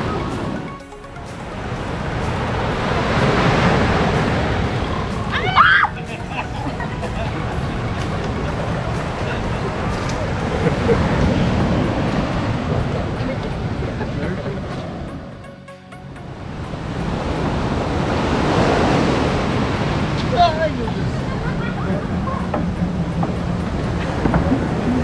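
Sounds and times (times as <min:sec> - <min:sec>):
sea surf rushing: 0:00.0 - 0:25.0.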